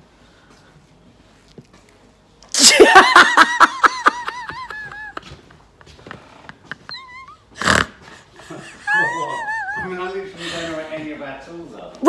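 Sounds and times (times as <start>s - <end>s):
woman laughing breathlessly: 2.6s - 10.8s.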